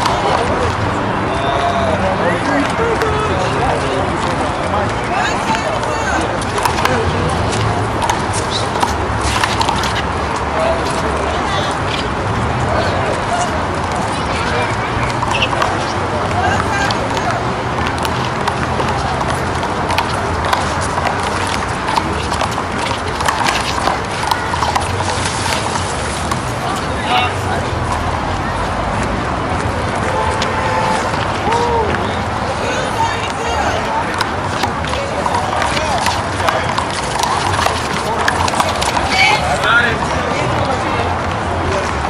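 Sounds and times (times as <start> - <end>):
crowd chatter: 0.0 - 42.0.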